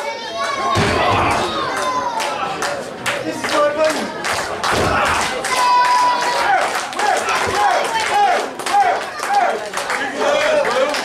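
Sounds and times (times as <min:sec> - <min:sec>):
crowd shouting and clapping: 0:00.0 - 0:11.0
high voices calling out rhythmically: 0:03.9 - 0:11.0.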